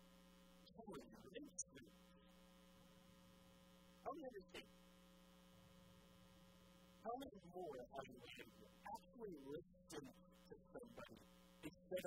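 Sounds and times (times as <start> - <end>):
low electrical mains hum: 0.0 - 12.0
man speaking: 0.7 - 1.9, 4.1 - 4.6, 7.1 - 12.0.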